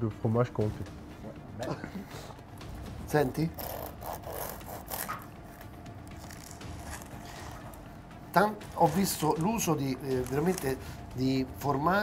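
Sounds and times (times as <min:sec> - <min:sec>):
bread knife sawing crusty bread: 0:03.5 - 0:05.3.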